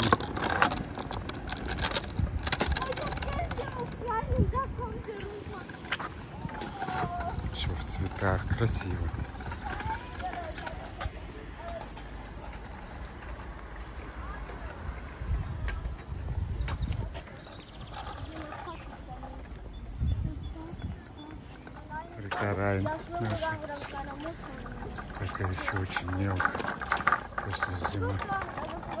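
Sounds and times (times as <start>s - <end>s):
wind rumble on microphone: 0.0s - 11.3s, 14.1s - 21.6s
faint voices: 0.0s - 29.0s.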